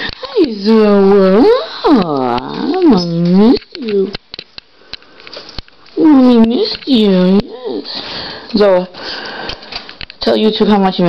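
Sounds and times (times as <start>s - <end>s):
small clicks and taps: 2.0s - 7.5s.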